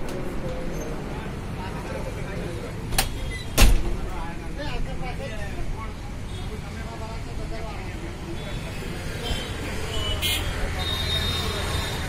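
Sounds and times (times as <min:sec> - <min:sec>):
people's voices: 0:00.0 - 0:12.0
street traffic: 0:00.0 - 0:12.0.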